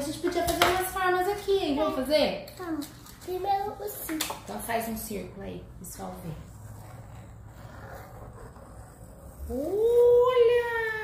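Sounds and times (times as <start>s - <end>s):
pen scratching drawing board: 6.0s - 10.2s.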